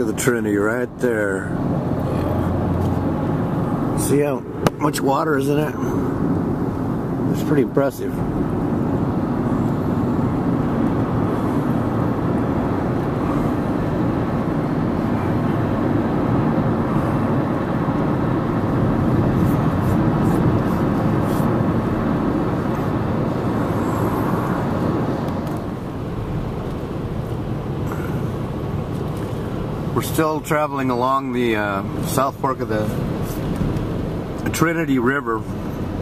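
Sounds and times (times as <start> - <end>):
car road noise inside cabin: 0.0 - 36.0.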